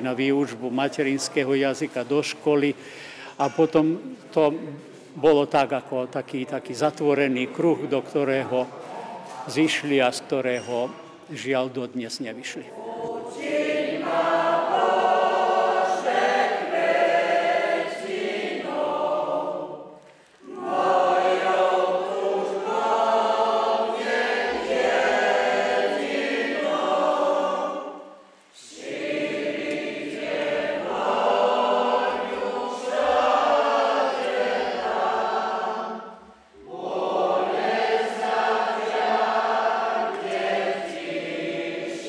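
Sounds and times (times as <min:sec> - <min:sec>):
congregation singing a hymn: 0:00.0 - 0:42.0.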